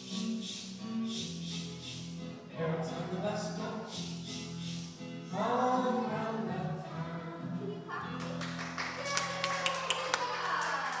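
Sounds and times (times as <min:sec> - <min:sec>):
children's song: 0:02.8 - 0:08.0
hands clapping: 0:08.2 - 0:11.0.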